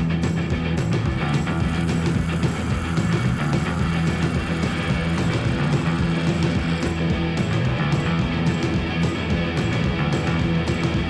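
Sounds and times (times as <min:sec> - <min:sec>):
instrumental rock band with guitar: 0:00.0 - 0:11.0.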